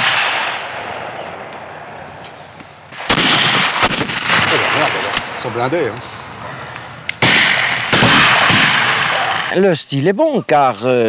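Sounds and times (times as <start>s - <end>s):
shotgun blast: 0.0s - 1.5s, 2.9s - 5.7s, 7.2s - 9.6s
faint crackles: 0.5s - 3.1s.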